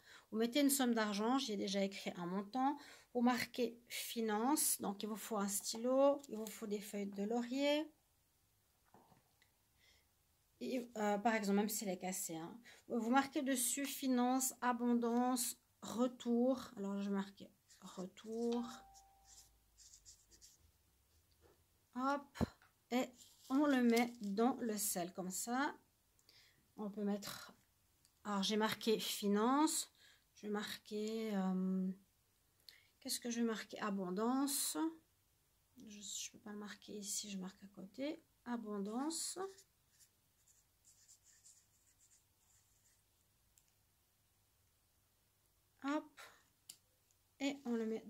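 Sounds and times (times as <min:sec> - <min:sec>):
pen scratching on leaf: 0:17.7 - 0:20.6, 0:39.4 - 0:43.0.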